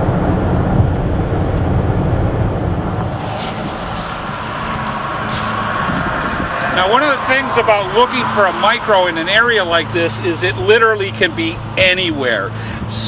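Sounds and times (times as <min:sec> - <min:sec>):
car engine rumble: 0:00.0 - 0:13.0
road noise hiss: 0:00.0 - 0:13.0.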